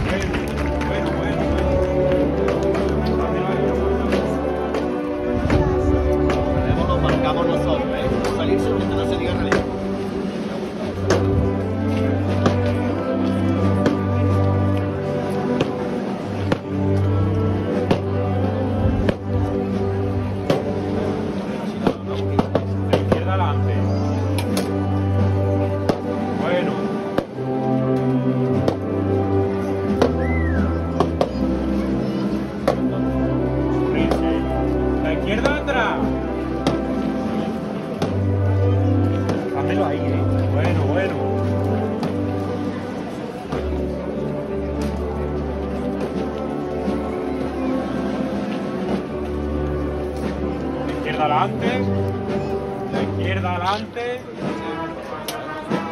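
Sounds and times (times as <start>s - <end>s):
brass band playing a march: 0.0s - 55.9s.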